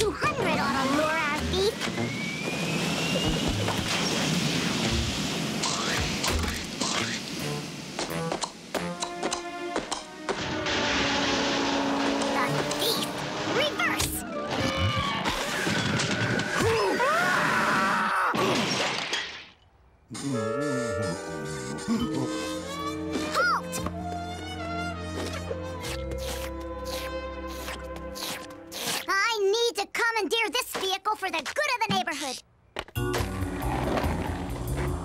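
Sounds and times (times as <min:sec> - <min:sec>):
shattering crash: 0:10.3 - 0:16.6.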